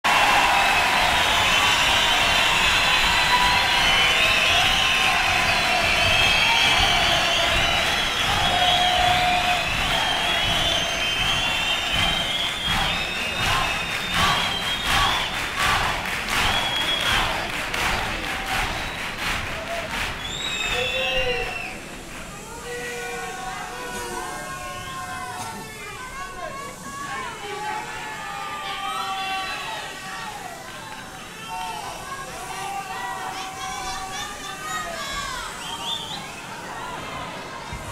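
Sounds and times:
hand-clapping: 0.0s - 22.4s
audience cheering and shouting: 0.0s - 37.9s.

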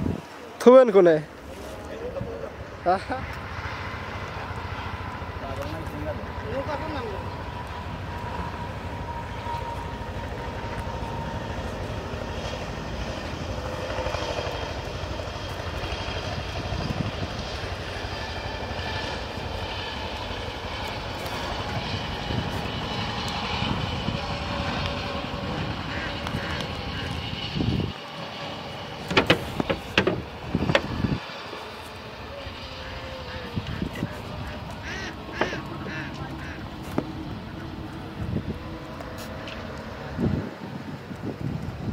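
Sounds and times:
steady low rumble: 1.4s - 41.9s
sharp knocks: 29.1s - 30.9s
faint voices: 31.4s - 39.4s.

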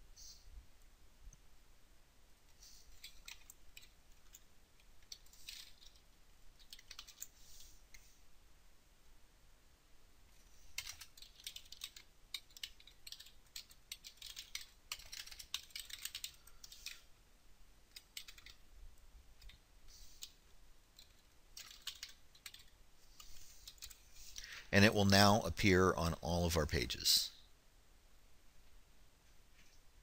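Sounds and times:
faint keyboard typing: 2.4s - 8.2s, 10.3s - 17.1s, 17.8s - 27.1s.

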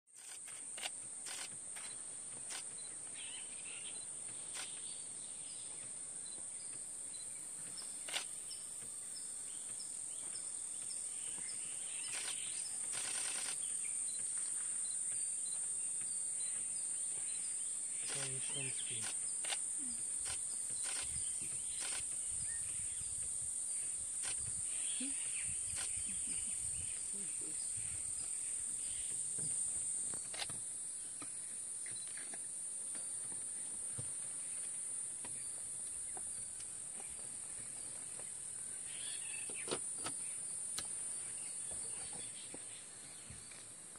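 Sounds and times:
high-pitched insect drone: 0.2s - 4.8s, 7.0s - 38.0s
sharp clicks: 12.1s - 13.6s, 18.0s - 21.2s.

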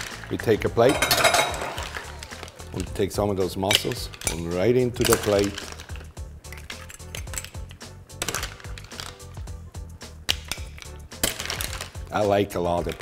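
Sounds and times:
shells and spoon clinking: 0.8s - 2.0s, 3.7s - 9.2s, 10.3s - 12.0s.

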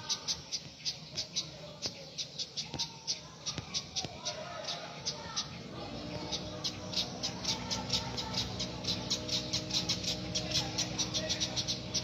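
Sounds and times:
small birds chirping: 0.0s - 12.0s
steady low hum: 4.6s - 12.0s.

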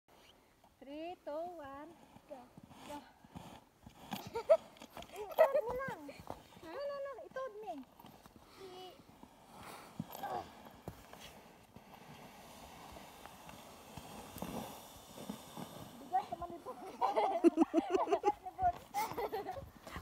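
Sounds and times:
sled scraping over snow: 1.0s - 20.0s
footsteps crunching in snow: 2.0s - 20.0s.

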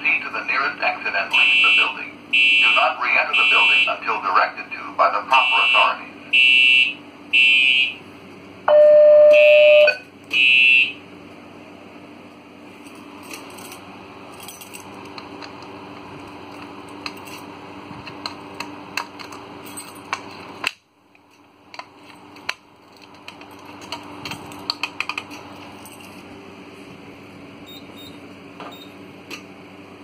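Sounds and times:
low steady alarm tone: 1.3s - 4.1s, 5.3s - 8.0s, 8.7s - 11.0s
fire alarm horn bursts: 1.4s - 4.0s, 5.4s - 8.0s, 8.7s - 11.0s.

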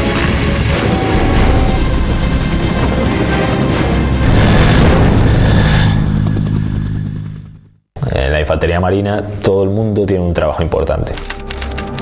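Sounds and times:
background music: 0.0s - 7.2s, 8.0s - 12.0s
helicopter rotor and turbine: 0.0s - 7.8s.

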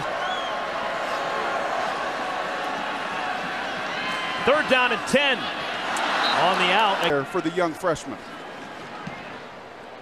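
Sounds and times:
stadium crowd din: 0.0s - 10.0s.

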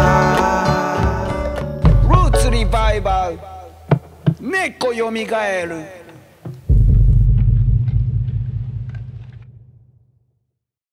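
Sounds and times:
deep bass rumble: 6.7s - 9.9s.

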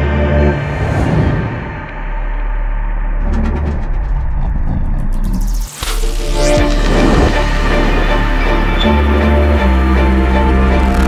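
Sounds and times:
deep low rumble: 0.0s - 11.0s.

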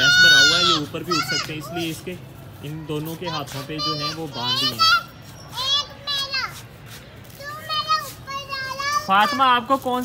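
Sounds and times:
children calling out: 0.0s - 9.7s.

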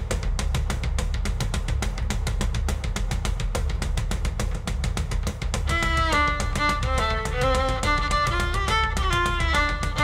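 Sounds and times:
heavy low bass rumble: 0.0s - 10.0s
rapid drumming on drum kit: 0.0s - 10.0s.

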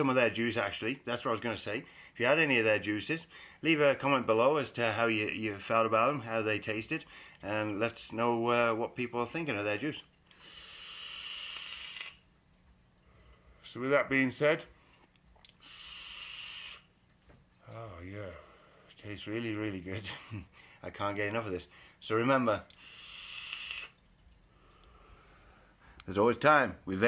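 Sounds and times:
hiss of air through vape: 10.3s - 12.2s, 15.4s - 17.0s, 22.6s - 24.0s.

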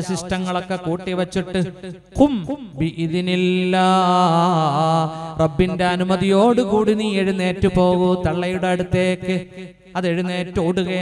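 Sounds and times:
man intoning into microphone: 0.0s - 11.0s.

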